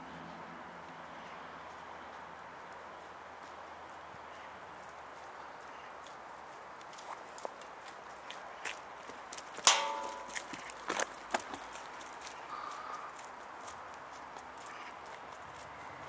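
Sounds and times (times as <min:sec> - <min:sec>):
footsteps on snowy concrete steps: 0:01.7 - 0:15.8
loud ringing knock: 0:09.7 - 0:10.4.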